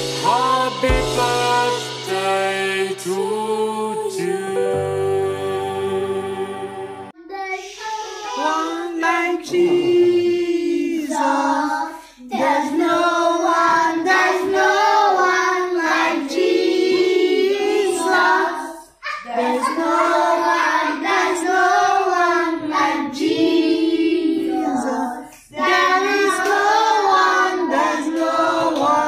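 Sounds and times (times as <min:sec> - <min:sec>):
children singing together: 0:00.0 - 0:29.0.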